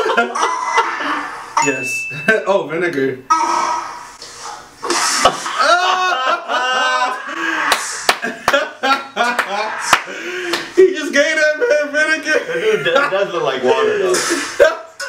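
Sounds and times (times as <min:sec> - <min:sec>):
men laughing: 0:00.0 - 0:01.5, 0:04.8 - 0:15.0
sharp hand claps: 0:07.6 - 0:08.7, 0:09.3 - 0:10.7.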